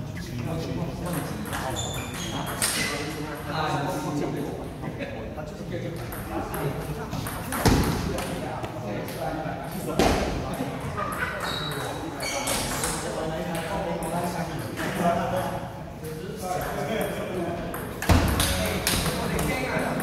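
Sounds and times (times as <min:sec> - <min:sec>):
voices chattering in a hall: 0:00.0 - 0:20.0.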